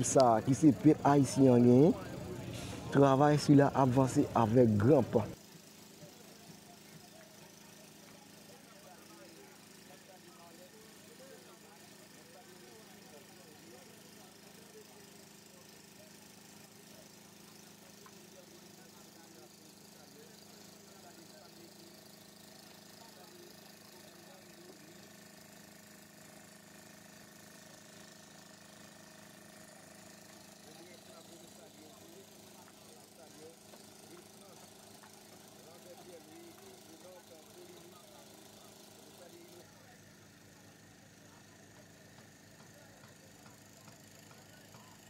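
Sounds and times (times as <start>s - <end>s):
distant chatter of voices: 0.0s - 45.0s.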